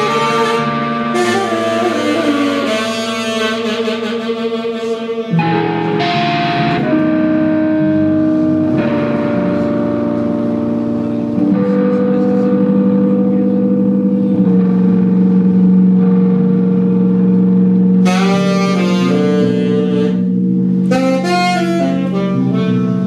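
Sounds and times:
electronic keyboard chords: 0.0s - 23.0s
fretless electric bass: 0.0s - 23.0s.

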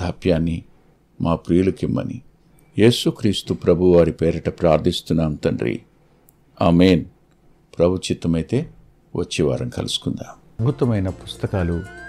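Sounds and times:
man's voice: 8.6s - 12.0s.

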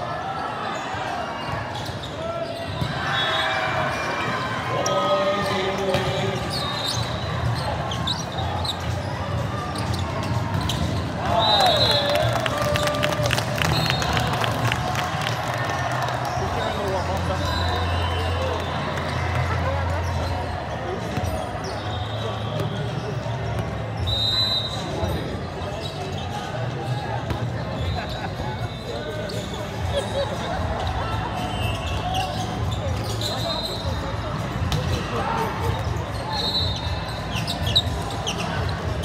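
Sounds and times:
chatter echoing in a hall: 0.0s - 39.0s
sneakers squeaking on court: 0.7s - 12.0s, 19.9s - 24.1s, 24.7s - 39.0s.

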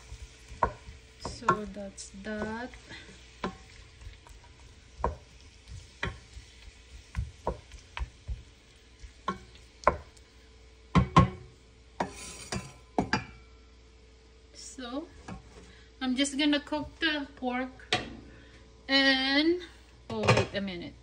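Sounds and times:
wooden spoon stirring meat in pot: 0.0s - 13.1s
spoon knocking against pot: 5.0s - 5.2s, 10.9s - 13.4s.

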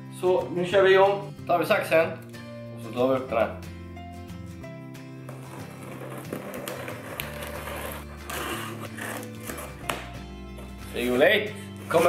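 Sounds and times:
background music with bass notes: 0.0s - 12.0s
scissors slitting packing tape: 5.6s - 10.1s.

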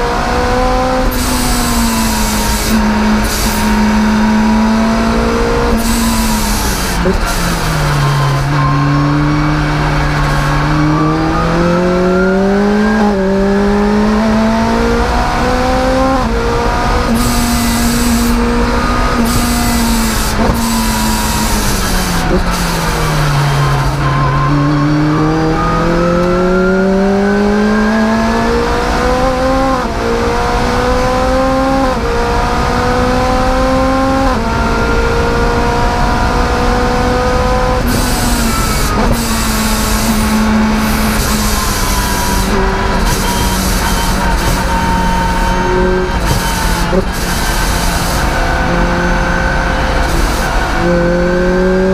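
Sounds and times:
car engine revving: 0.0s - 51.9s.

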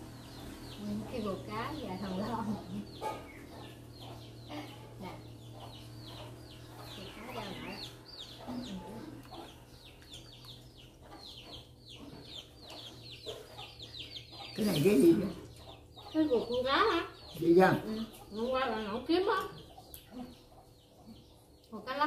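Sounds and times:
birds chirping: 0.0s - 22.0s
steady low hum: 0.0s - 22.0s.

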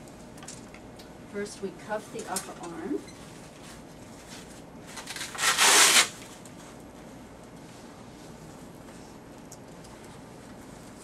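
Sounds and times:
hook-and-loop fastener ripping: 5.0s - 6.3s.

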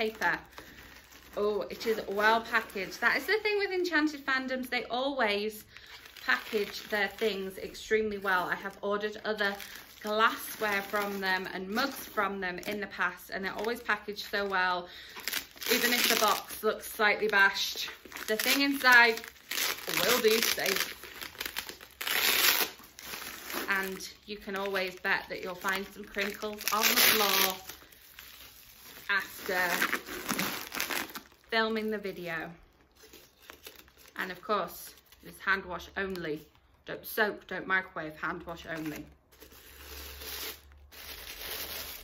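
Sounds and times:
bubble wrap crinkling: 0.0s - 36.8s, 38.5s - 42.0s.

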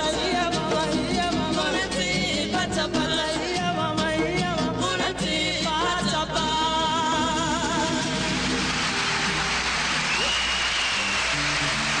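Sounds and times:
audience applause: 8.1s - 12.0s
high held whistle tone: 10.0s - 11.5s.

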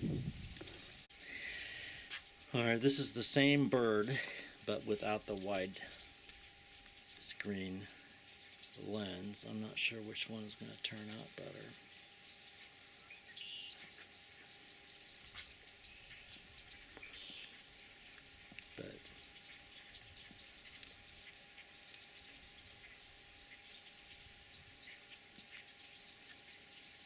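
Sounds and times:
steady low hiss: 0.0s - 27.0s
faint high chirps: 10.6s - 27.0s.

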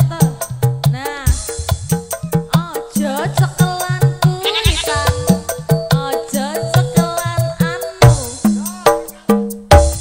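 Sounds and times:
fast drum beat: 0.0s - 10.0s
live band playing: 0.0s - 10.0s.

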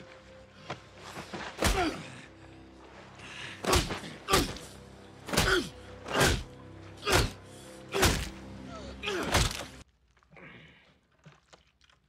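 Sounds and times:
film score music: 0.0s - 11.6s.

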